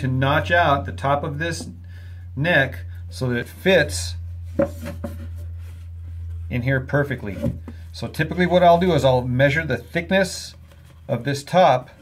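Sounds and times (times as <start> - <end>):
steady low hum: 0.0 - 12.0
wood rubbing on wood: 4.4 - 11.4.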